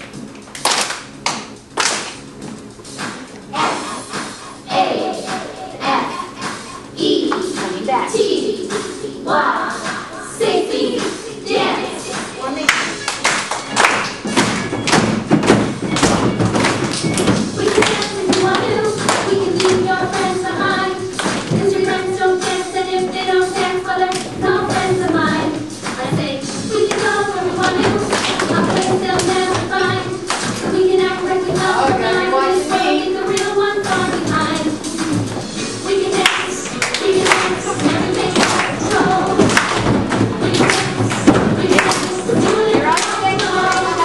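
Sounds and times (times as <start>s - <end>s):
hand claps with room echo: 0.0s - 2.3s, 12.1s - 20.3s, 21.1s - 21.7s, 26.8s - 30.7s, 36.2s - 44.0s
voices: 30.8s - 35.1s.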